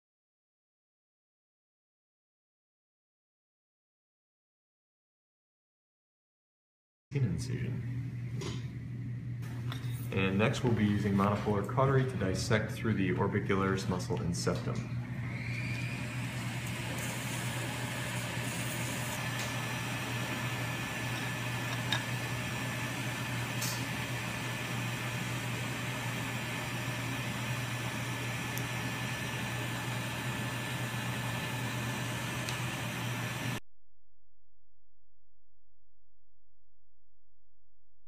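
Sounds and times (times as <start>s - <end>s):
equipment hum and hiss: 7.1s - 33.6s.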